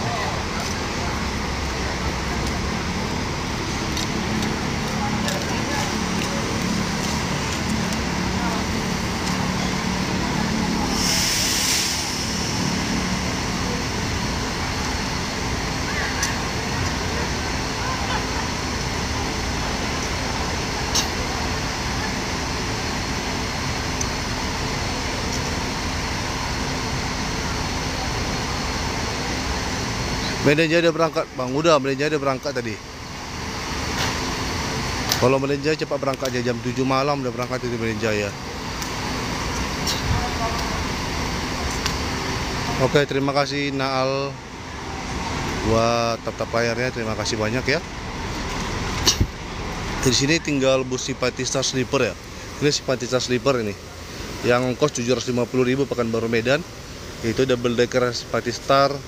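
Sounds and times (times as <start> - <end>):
diesel coach engines idling: 0.0 - 59.0
terminal background noise: 0.0 - 59.0
loud air hiss: 9.8 - 15.0.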